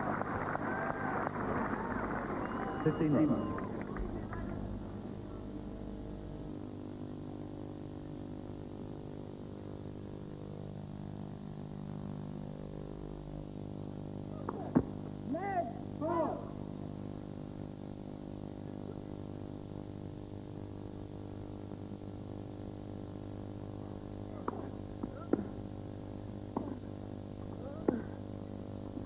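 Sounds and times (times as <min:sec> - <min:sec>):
steady hum: 0:00.0 - 0:29.0.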